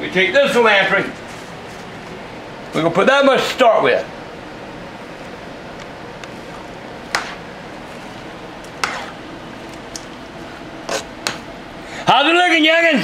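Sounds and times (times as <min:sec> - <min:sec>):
spoon stirring wet salsa: 0:06.2 - 0:11.5.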